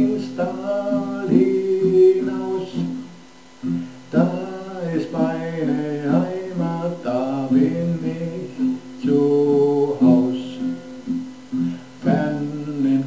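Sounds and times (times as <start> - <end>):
man singing: 0.0 - 13.0
strummed acoustic guitar: 0.0 - 13.0.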